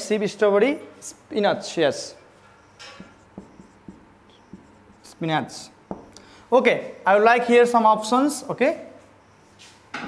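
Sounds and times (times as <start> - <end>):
marker pen on whiteboard: 2.3 - 7.0.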